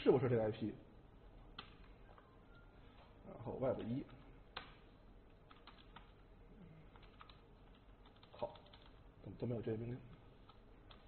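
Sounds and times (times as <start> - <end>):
keyboard keystrokes: 10.4 - 11.0.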